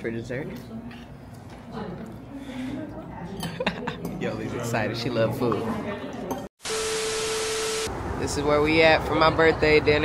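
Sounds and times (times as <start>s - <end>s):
static hiss with steady tone: 6.6s - 7.9s.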